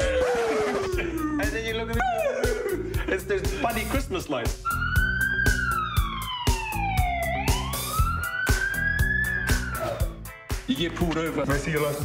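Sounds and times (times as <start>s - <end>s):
police siren wail: 0.0s - 1.5s, 4.7s - 10.2s
music with steady beat: 0.9s - 12.0s.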